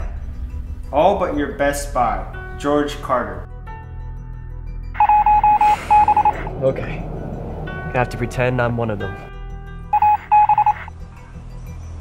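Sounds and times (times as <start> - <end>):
short electronic beeps: 5.0 - 6.5, 10.0 - 10.9.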